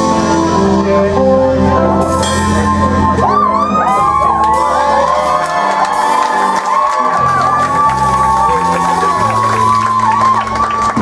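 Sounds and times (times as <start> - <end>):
rock band playing live: 0.0 - 11.0
crowd whooping and cheering: 2.4 - 11.0.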